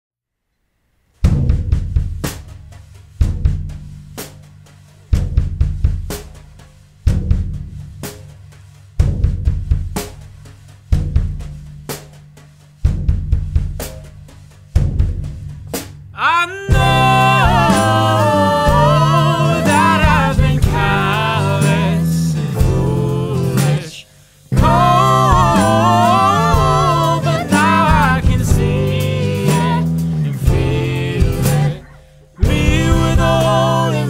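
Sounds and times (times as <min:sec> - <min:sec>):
drum kit beat: 0:01.2 - 0:34.0.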